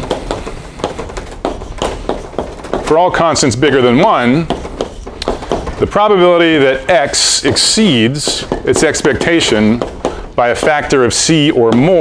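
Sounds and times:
chalk tapping and scratching: 0:00.0 - 0:12.0.

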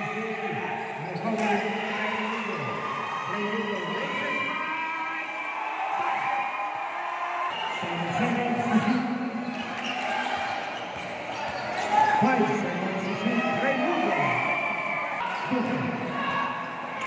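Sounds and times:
spectators talking and shouting: 0:00.0 - 0:17.0.

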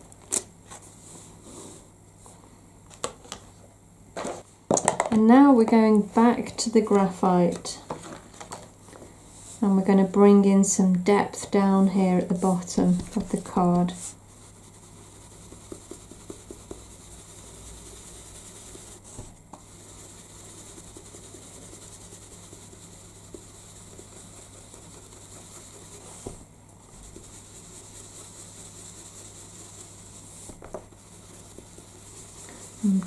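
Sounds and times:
brush bristles rubbing on paper: 0:11.3 - 0:33.0.

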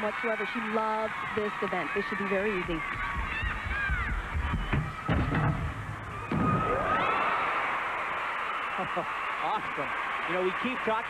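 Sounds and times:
crowd calls: 0:00.0 - 0:11.0
crowd cheering: 0:00.0 - 0:11.0.

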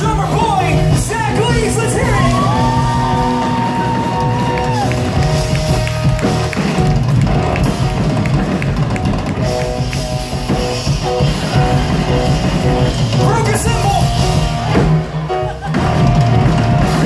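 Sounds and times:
drum kit: 0:00.0 - 0:17.0
electric bass: 0:00.0 - 0:17.0
electric guitar: 0:00.1 - 0:17.0.

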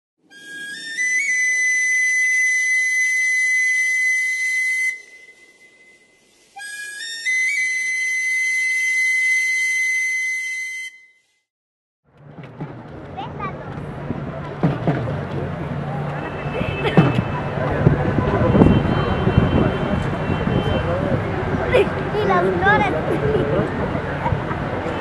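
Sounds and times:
high whistle-like tone: 0:00.3 - 0:11.3
outdoor crowd ambience: 0:12.1 - 0:25.0.

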